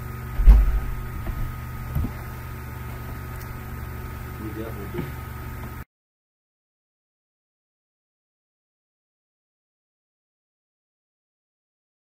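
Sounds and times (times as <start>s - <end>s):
electrical hum: 0.0s - 5.8s
faint knocks: 0.3s - 3.2s
dull low thump: 0.3s - 3.7s.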